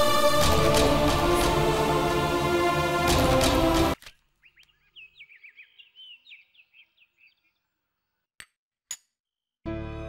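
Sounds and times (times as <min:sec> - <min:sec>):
birds chirping and whistling: 0:04.4 - 0:07.7.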